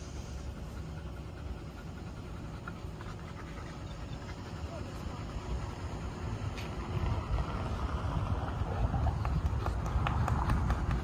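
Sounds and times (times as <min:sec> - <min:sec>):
wind buffeting microphone: 0:06.2 - 0:11.0.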